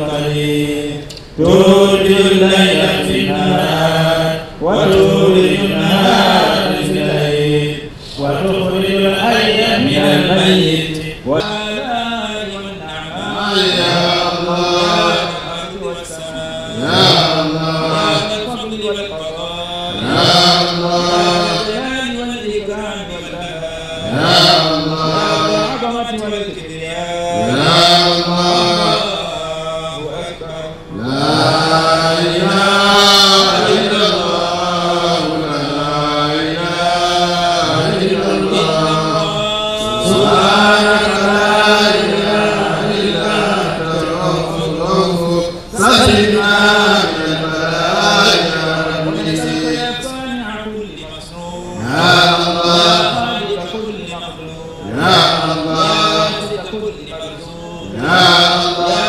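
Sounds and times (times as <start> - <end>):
men chanting devotional verses: 0.0 - 59.0.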